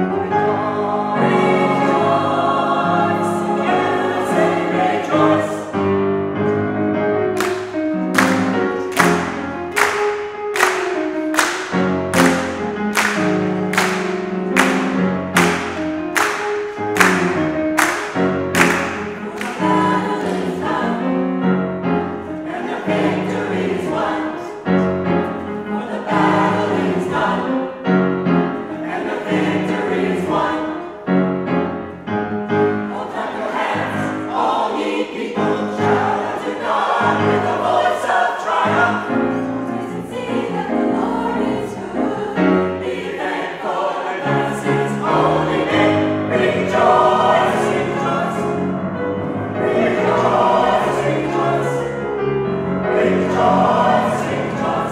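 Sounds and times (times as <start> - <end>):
gospel choir singing in harmony: 0.0 - 54.9.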